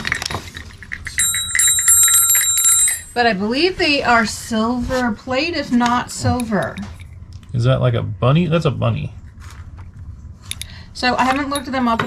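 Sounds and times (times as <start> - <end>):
hand bell ringing: 1.0 - 3.2.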